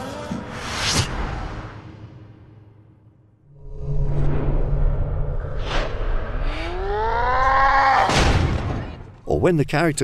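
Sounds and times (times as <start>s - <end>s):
deep rising tone: 3.4s - 7.4s.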